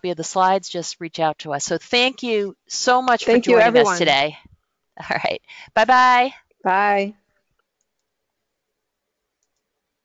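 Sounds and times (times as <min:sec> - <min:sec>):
tiny clicks: 0:09.4 - 0:09.7.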